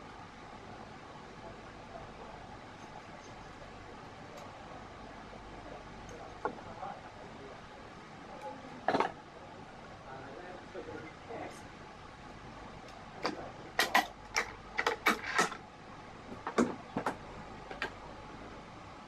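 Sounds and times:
room hum: 0.0 - 19.0.

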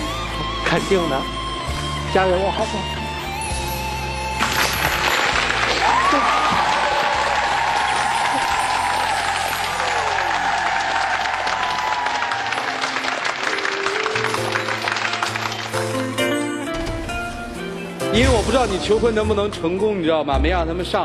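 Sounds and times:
background music: 0.0 - 21.0
audience applauding: 4.4 - 16.5.

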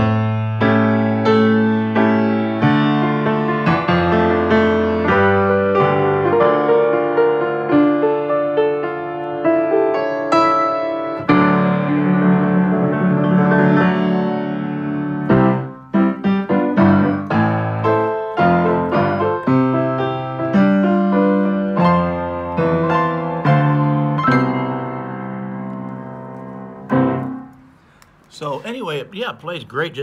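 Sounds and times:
grand piano chords: 0.0 - 29.2.

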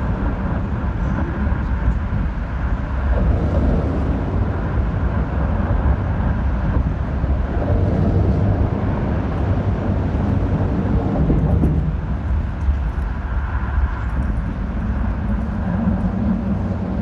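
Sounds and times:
dense low rumble: 0.0 - 17.0
noisy haze: 0.0 - 17.0.

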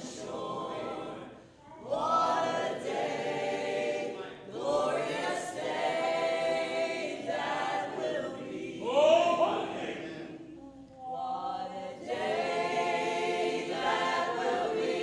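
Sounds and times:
congregation singing a hymn: 0.0 - 15.0.

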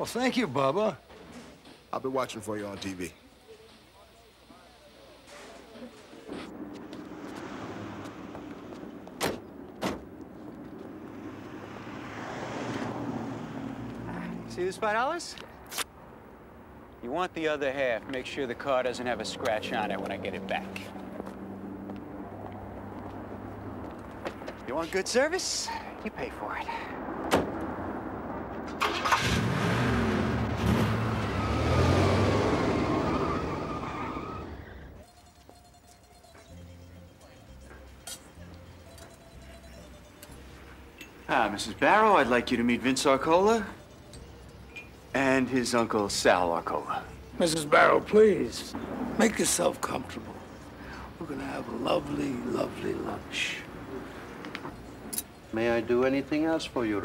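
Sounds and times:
sharp thuds: 6.3 - 10.9
car engine pulling away: 6.3 - 14.7, 27.1 - 35.0.

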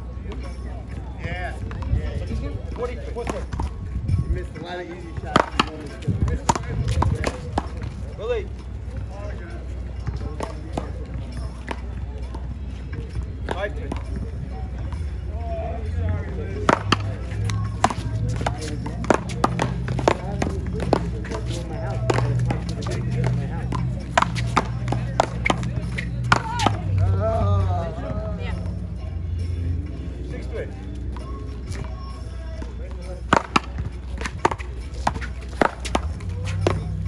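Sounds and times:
faint voices: 0.0 - 37.0
ball cracking off paddles and wall: 16.6 - 26.9, 33.3 - 37.0.

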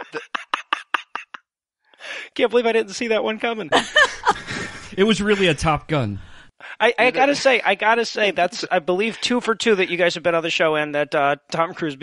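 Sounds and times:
person laughing: 0.0 - 1.5, 3.7 - 5.8.

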